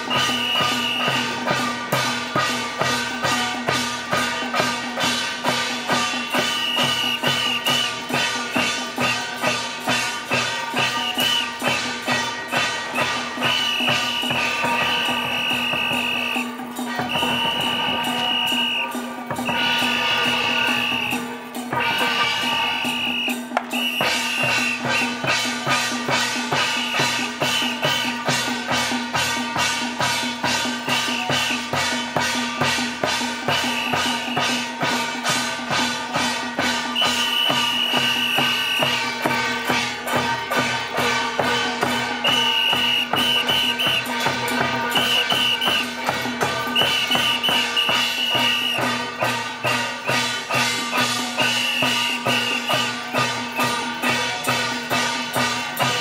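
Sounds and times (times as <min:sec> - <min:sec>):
brass hand cymbals clashing: 0:00.0 - 0:56.0.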